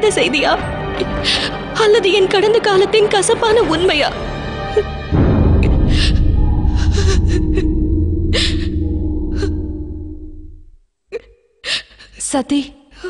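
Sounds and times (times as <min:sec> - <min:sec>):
low booming music sting: 0:05.1 - 0:10.9.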